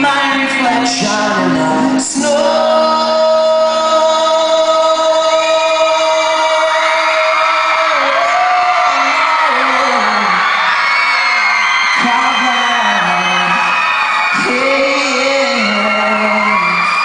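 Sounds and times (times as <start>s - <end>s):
audience whooping: 2.2s - 17.0s.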